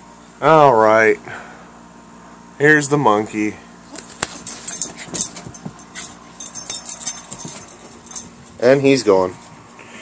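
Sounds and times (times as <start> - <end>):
clicks and scuffling: 3.9 - 9.8
dog collar tags jingling: 4.0 - 9.8.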